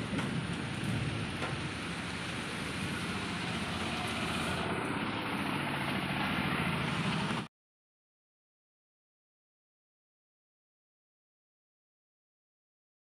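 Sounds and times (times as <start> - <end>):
heavy rain on metal roof: 0.0 - 7.5.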